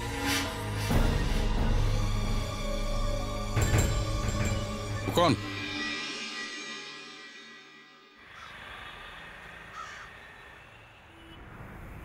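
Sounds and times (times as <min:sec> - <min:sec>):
crow cawing: 0:08.2 - 0:10.6.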